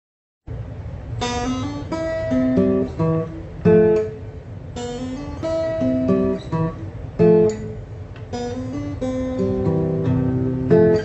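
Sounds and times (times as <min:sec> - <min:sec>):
acoustic guitar playing: 0:01.2 - 0:11.0.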